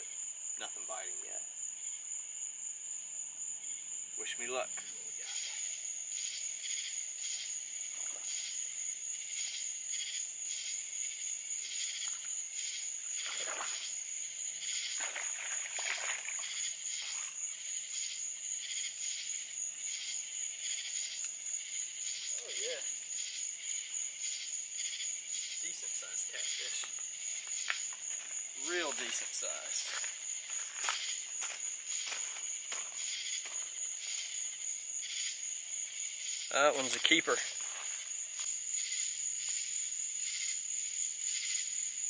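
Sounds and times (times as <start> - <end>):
high-pitched insect drone: 3.6 - 41.9
pulsing frog calls: 11.8 - 19.2.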